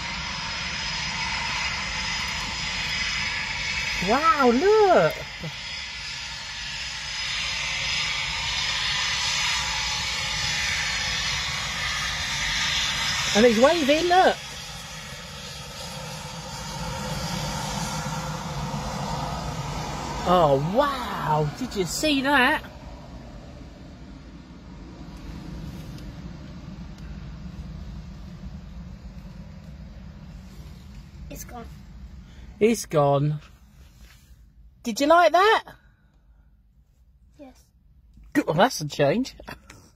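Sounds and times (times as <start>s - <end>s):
distant jet engines rushing: 0.0s - 36.8s.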